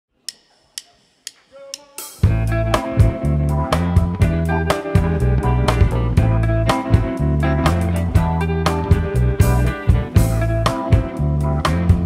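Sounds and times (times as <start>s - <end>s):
drumstick count-in clicks: 0.2s - 2.3s.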